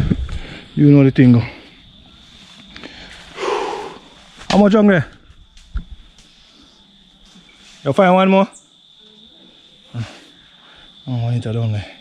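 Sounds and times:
person exhaling: 0:02.8 - 0:04.0.

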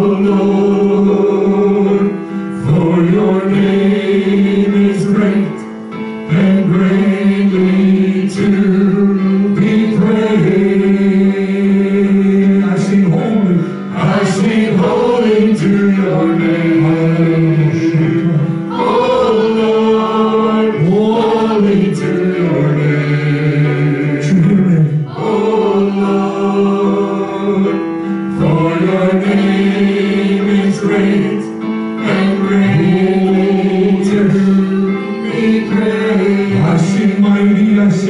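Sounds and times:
group singing long note: 0:00.0 - 0:38.0.

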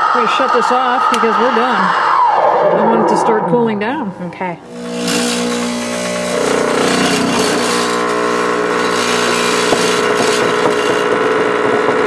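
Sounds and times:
espresso machine pump buzzing: 0:04.7 - 0:12.0.

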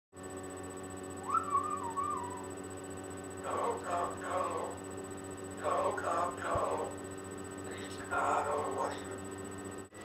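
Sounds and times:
parrot whistling: 0:01.2 - 0:02.6.

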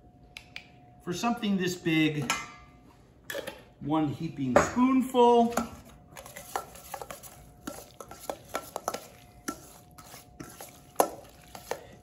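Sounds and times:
spoon scraping and clinking bowl: 0:06.2 - 0:12.0.

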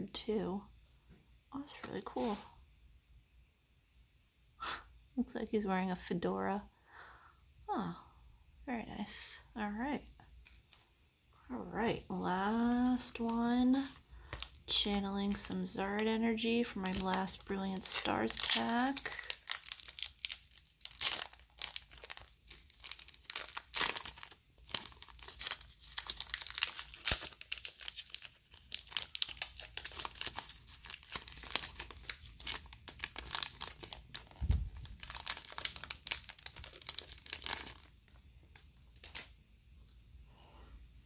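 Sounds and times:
foil wrapper crinkling and tearing: 0:12.5 - 0:39.4.

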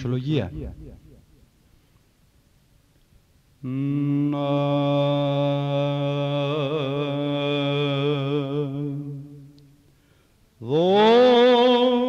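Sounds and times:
low vocal drone: 0:03.6 - 0:09.6, 0:10.6 - 0:12.0.

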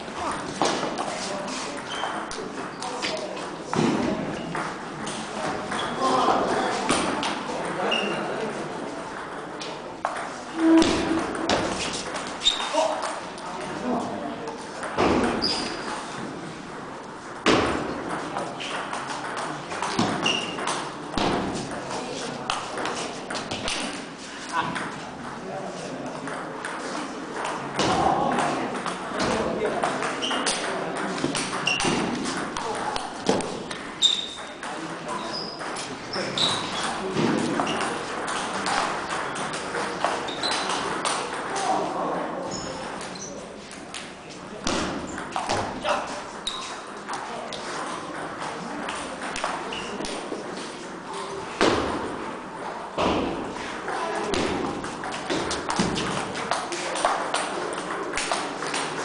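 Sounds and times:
murmur of voices: 0:00.0 - 0:59.0
ping-pong ball bouncing: 0:01.8 - 0:02.8, 0:09.1 - 0:13.2, 0:14.8 - 0:21.9, 0:26.2 - 0:26.8, 0:27.4 - 0:35.8, 0:36.4 - 0:41.8, 0:44.7 - 0:45.8, 0:46.4 - 0:50.4.

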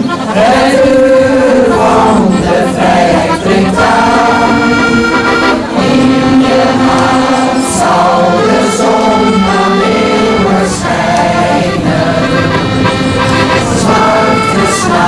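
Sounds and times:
choir singing sustained passage: 0:00.0 - 0:15.0.

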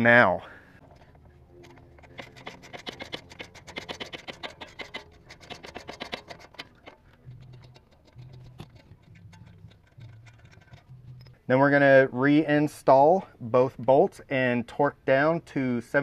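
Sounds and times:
socket ratchet clicking: 0:00.8 - 0:11.4.

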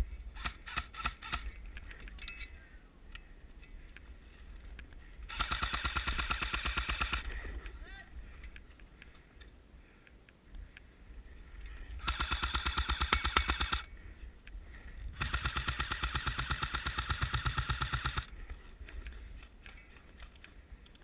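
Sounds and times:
airsoft rifle firing full auto: 0:00.4 - 0:01.5, 0:05.3 - 0:07.3, 0:12.0 - 0:13.9, 0:15.2 - 0:18.3.

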